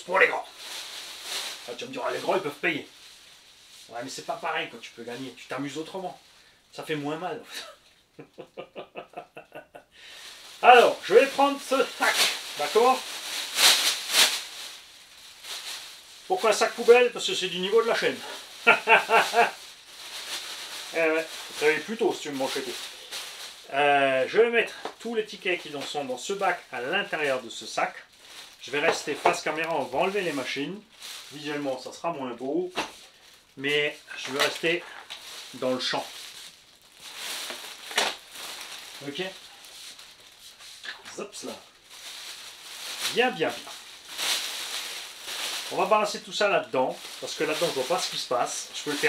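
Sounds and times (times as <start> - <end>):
plastic garbage bag rustling: 0.0 - 9.2, 10.0 - 49.0.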